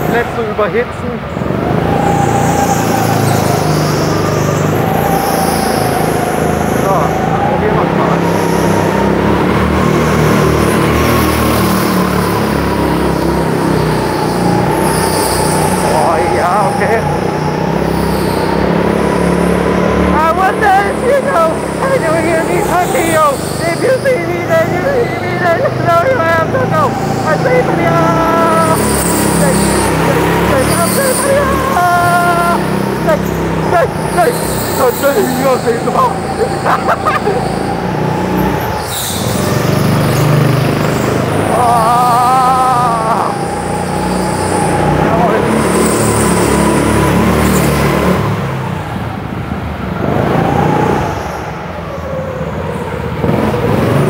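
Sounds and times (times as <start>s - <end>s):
tyres squealing: 0.0s - 48.6s
go-kart engine running: 0.0s - 54.0s.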